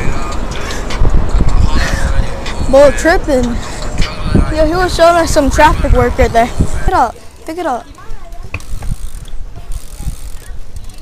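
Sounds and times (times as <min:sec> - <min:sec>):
wind buffeting microphone: 0:00.0 - 0:11.0
bike tyres rumbling on asphalt: 0:03.5 - 0:11.0.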